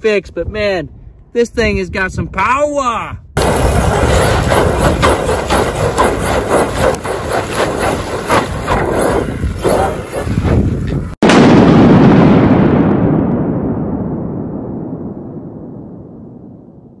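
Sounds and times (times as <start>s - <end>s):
deep explosion-like boom: 3.4s - 6.4s, 10.4s - 17.0s
rc car engine revving: 3.4s - 10.4s
tyres spinning on gravel: 3.4s - 11.2s.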